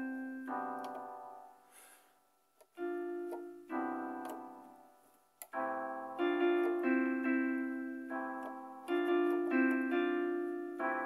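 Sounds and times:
piano chords: 0.0 - 1.7, 2.7 - 11.0.

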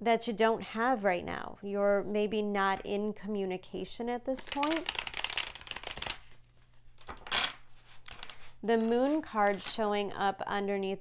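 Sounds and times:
cards being shuffled: 4.4 - 9.8.

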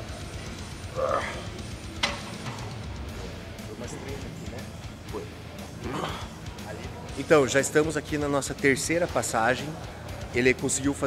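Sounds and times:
background music with bass and drums: 0.0 - 11.0.

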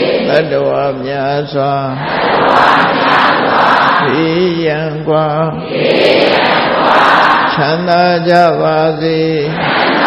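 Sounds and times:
man leading chant: 0.0 - 2.1, 4.0 - 5.8, 7.5 - 9.8
congregation chanting: 0.0 - 10.0.

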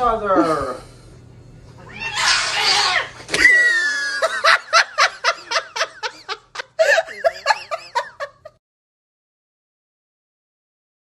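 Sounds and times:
person laughing in high bursts: 3.4 - 8.6.

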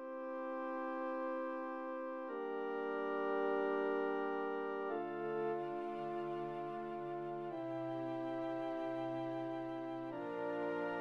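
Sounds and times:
orchestral chord sustained: 0.8 - 11.0.

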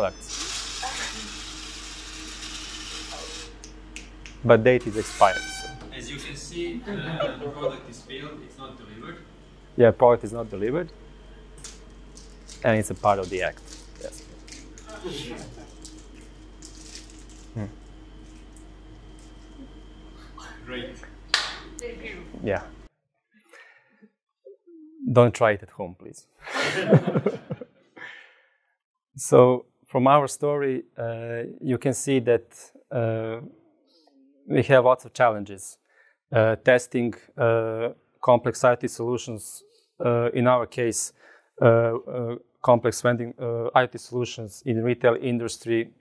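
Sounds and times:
vending machine mechanism running: 0.0 - 22.6
hand clap: 3.6 - 4.4, 21.3 - 21.7.

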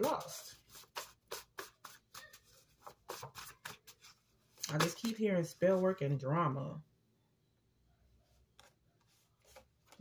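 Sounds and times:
paper cards shuffling: 0.0 - 5.9.

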